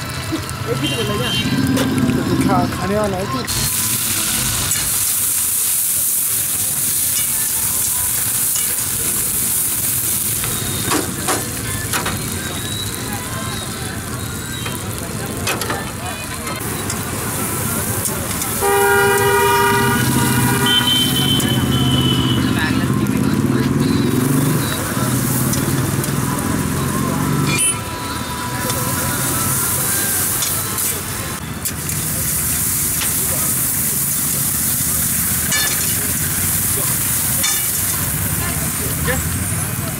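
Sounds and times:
vegetables sizzling in a wok: 0:00.0 - 0:39.9
vehicle horn honking: 0:00.7 - 0:01.9, 0:18.5 - 0:22.6.

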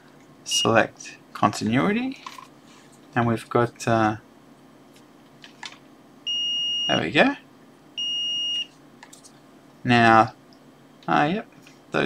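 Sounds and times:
multimeter continuity beep: 0:06.3 - 0:07.0, 0:08.0 - 0:08.7.

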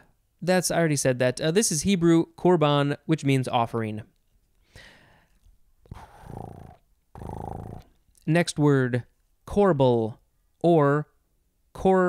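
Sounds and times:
cat purring: 0:05.9 - 0:08.0.

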